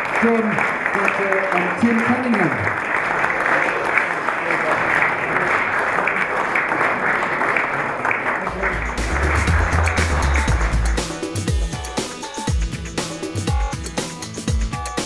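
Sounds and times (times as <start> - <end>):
audience applauding: 0.0 - 12.5
music with heavy bass: 8.5 - 15.0.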